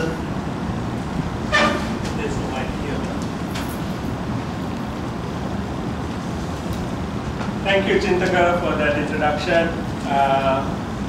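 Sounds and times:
steady background noise: 0:00.0 - 0:11.0
short pitched toot: 0:01.5 - 0:02.1.

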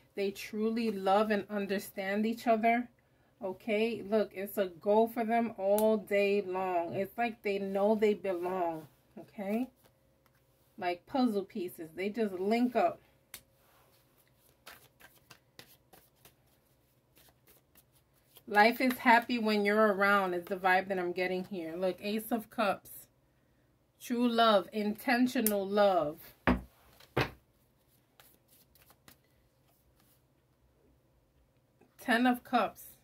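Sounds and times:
cards being shuffled: 0:13.9 - 0:19.2, 0:26.9 - 0:30.2.

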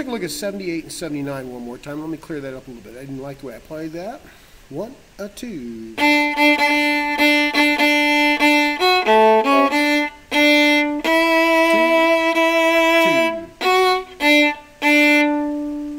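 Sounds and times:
bowed viola notes: 0:05.6 - 0:15.9.

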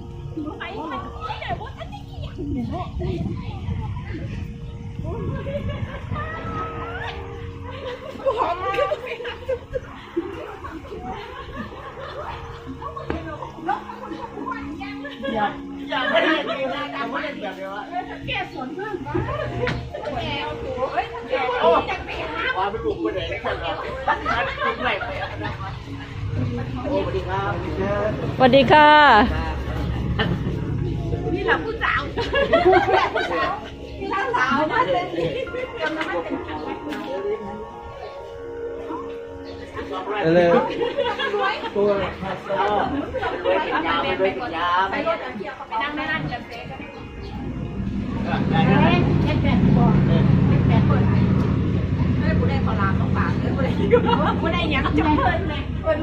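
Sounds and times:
women chatting: 0:00.0 - 0:27.4, 0:28.3 - 0:38.2, 0:42.6 - 0:56.0
people chatting: 0:26.4 - 0:37.7, 0:39.9 - 0:56.0.

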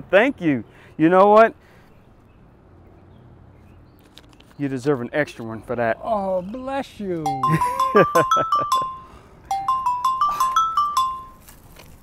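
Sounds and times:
phone ringtone melody: 0:07.3 - 0:11.4.

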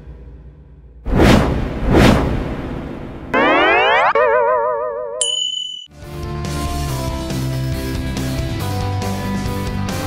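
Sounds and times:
rising sweep into boing: 0:01.2 - 0:05.2
short high ding: 0:05.2 - 0:05.9.

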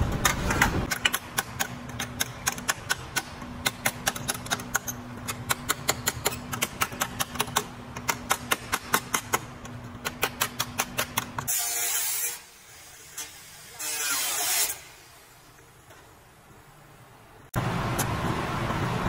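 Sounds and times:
angle grinder cutting sheet steel: 0:13.1 - 0:14.9.

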